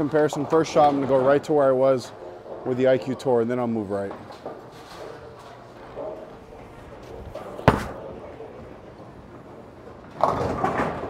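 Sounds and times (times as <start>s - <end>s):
hubbub of bowling centre: 0.0s - 11.0s
bowling ball rolling rumble: 6.6s - 11.0s
bowling ball thud on lane: 7.5s - 8.1s.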